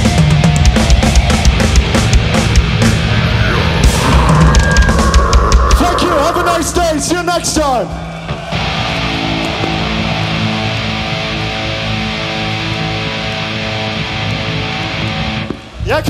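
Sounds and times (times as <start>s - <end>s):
distorted electric guitar and bass chord: 1.0s - 7.2s, 8.7s - 15.7s.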